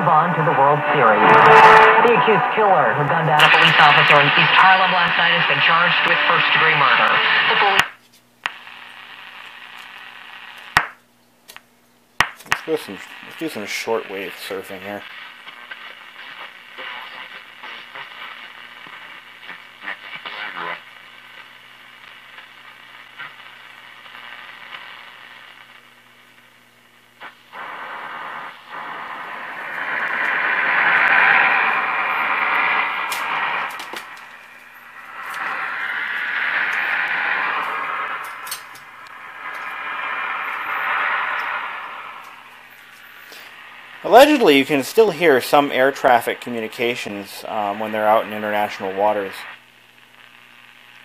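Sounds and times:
low steady hum: 0.0 - 10.4, 15.0 - 47.9
radio static and hiss: 0.0 - 51.0.

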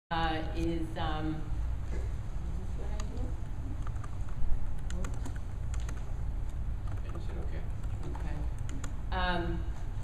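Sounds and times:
low room hum: 0.1 - 10.0.

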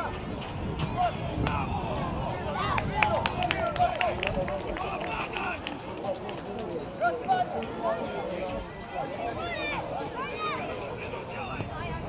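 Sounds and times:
people shouting and calling: 0.8 - 5.7, 7.0 - 12.0.

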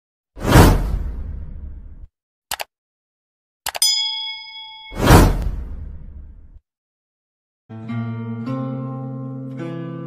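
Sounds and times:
whoosh: 4.9 - 6.6.

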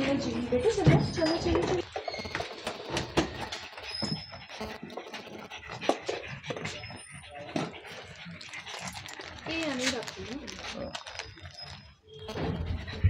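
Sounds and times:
dog breathing heavily: 0.0 - 13.0.

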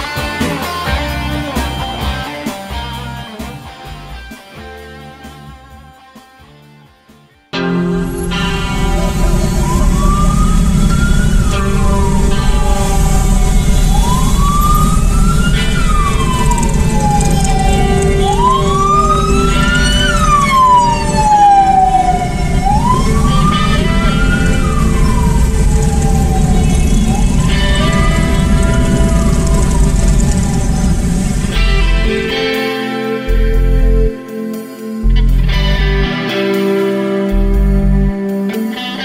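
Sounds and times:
ambulance siren wailing: 7.6 - 39.0.

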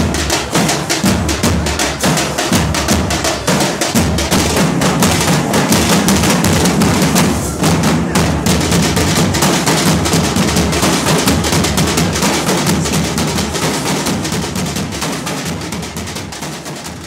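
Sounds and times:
barrel drums beaten in fast rhythm: 0.0 - 17.0.

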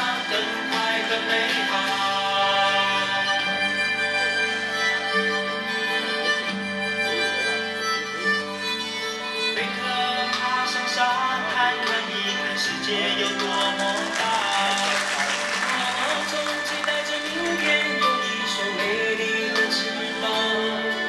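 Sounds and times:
music with long held notes: 0.0 - 21.0.

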